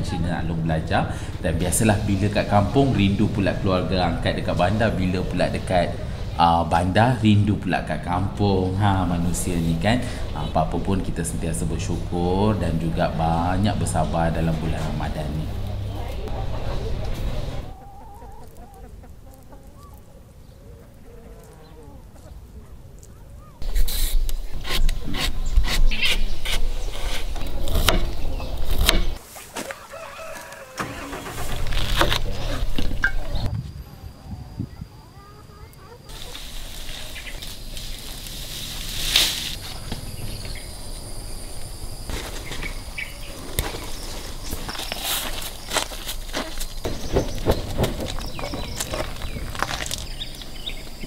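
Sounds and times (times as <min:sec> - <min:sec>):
insects droning: 0:00.0 - 0:51.0
bird chirps: 0:39.6 - 0:41.8, 0:42.4 - 0:45.8, 0:46.4 - 0:51.0.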